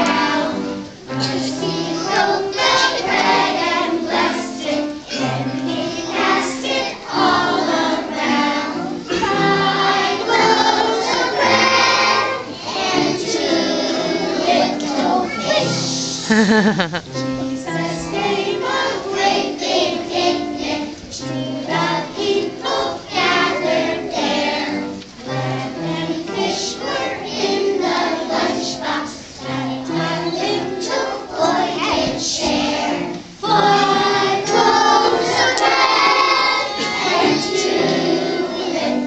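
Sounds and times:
children singing: 0.0 - 39.0.

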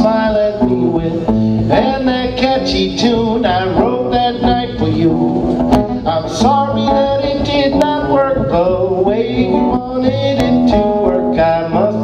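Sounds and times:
acoustic guitar strumming: 0.0 - 12.0
man singing: 0.0 - 12.0
second guitar playing: 0.0 - 12.0.

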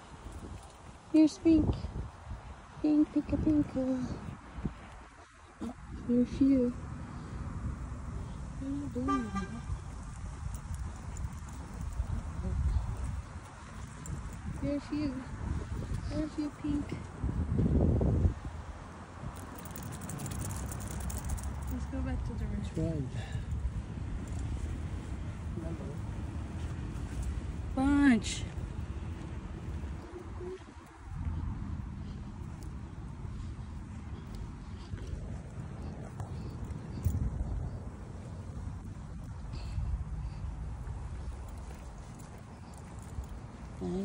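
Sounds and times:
outdoor background: 0.0 - 44.0
wind buffeting microphone: 0.0 - 44.0.

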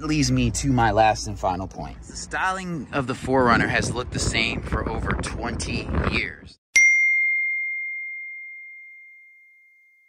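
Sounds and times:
ringing bell-like ding: 6.8 - 10.0.

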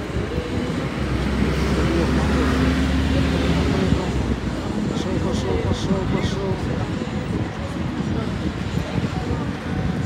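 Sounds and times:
background voices: 0.0 - 10.0.

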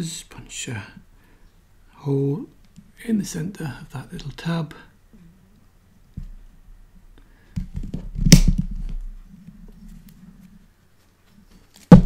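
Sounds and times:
leather punch knocks and rubbing: 7.6 - 9.0.

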